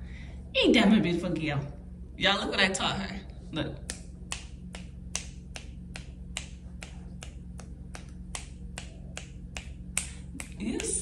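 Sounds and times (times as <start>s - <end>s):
faint low hum: 0.0s - 11.0s
fingers snapping: 3.8s - 11.0s.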